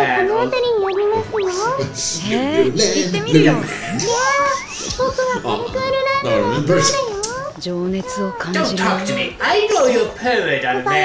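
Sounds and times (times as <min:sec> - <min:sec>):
high expressive character voices: 0:00.0 - 0:09.6, 0:10.7 - 0:11.0.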